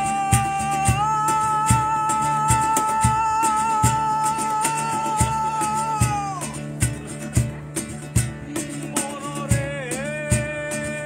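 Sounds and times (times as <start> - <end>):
cajon beats: 0.0 - 11.0
strummed acoustic guitars: 0.0 - 11.0.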